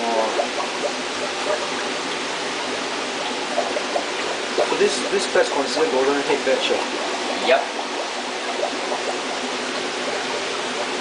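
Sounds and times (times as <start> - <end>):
water rushing in aquarium: 0.0 - 11.0.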